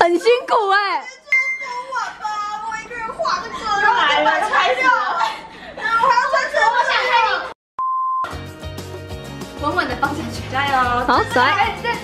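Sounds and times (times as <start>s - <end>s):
steady beep: 7.8s - 8.3s
background music with bass line: 8.3s - 12.0s.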